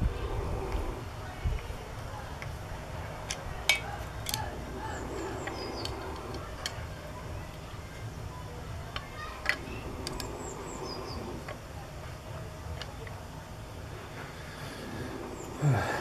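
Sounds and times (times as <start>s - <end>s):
small birds chirping: 3.0s - 11.7s, 14.4s - 16.0s.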